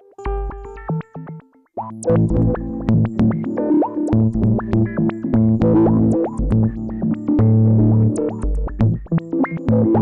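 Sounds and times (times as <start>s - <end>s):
synth-like electric guitar: 0.0s - 10.0s.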